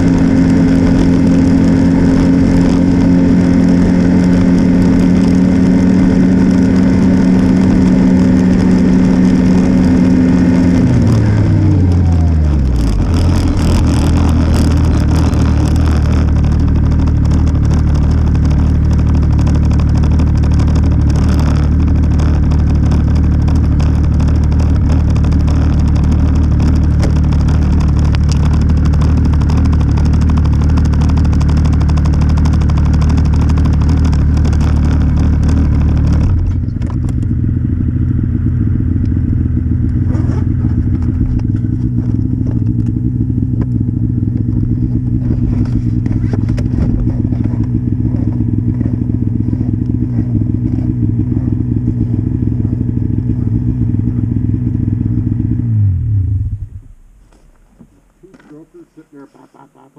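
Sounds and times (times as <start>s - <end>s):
snowmobile engine idling: 0.0s - 56.0s, 56.6s - 59.9s.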